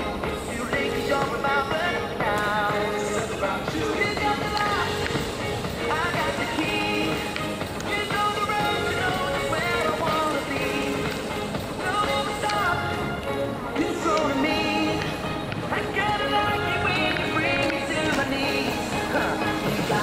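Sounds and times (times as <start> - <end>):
pop song with vocals: 0.0 - 20.0
skate wheels rolling on concrete: 0.0 - 20.0.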